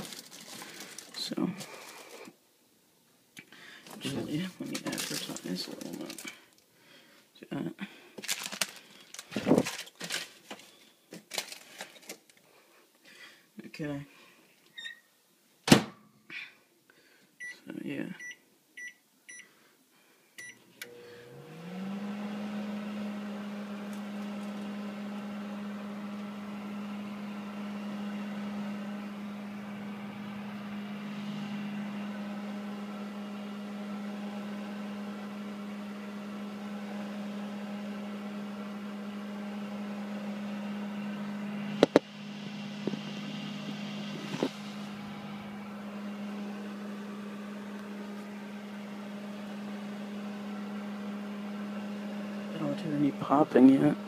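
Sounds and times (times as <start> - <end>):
microwave oven beep: 14.8 - 15.0, 17.4 - 17.6, 18.2 - 19.5, 20.4 - 21.3
microwave oven humming: 20.4 - 54.0.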